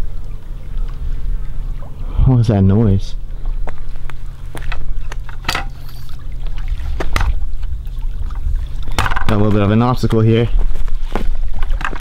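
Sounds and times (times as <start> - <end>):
steady low rumble: 0.0 - 11.9.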